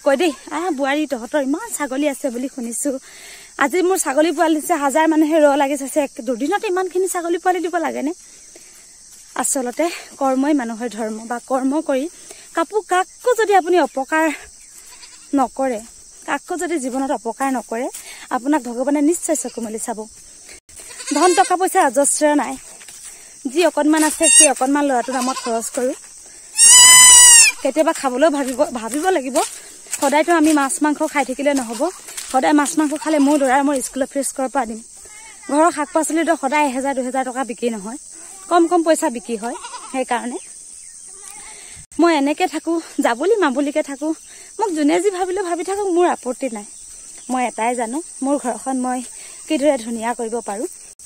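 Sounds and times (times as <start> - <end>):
woman talking: 0.0 - 3.0, 3.6 - 8.2, 9.3 - 14.5, 15.3 - 20.2, 21.1 - 22.8, 23.4 - 26.0, 27.6 - 40.5, 41.4 - 46.7, 47.3 - 50.8
crickets trilling: 0.0 - 51.0
goats bleating: 14.8 - 15.3, 20.8 - 21.6, 24.2 - 25.7, 26.6 - 27.6, 39.4 - 40.0.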